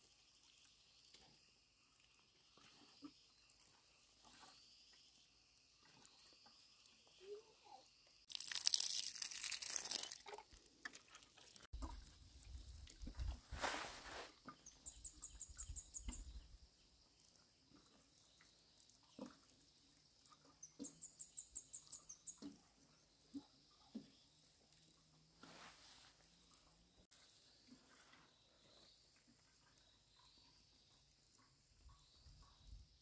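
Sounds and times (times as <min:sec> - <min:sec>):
water pouring onto soil: 0:08.3 - 0:11.7.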